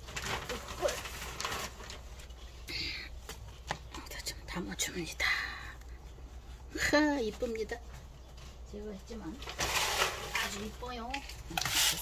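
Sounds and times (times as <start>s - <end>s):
hands rustling and scraping soil: 0.0s - 4.2s, 5.9s - 12.0s.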